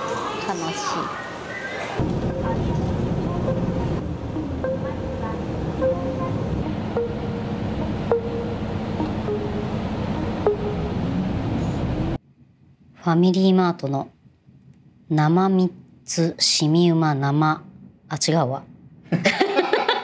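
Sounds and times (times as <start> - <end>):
traffic rumble: 0.0 - 12.2
faint music: 0.0 - 19.2.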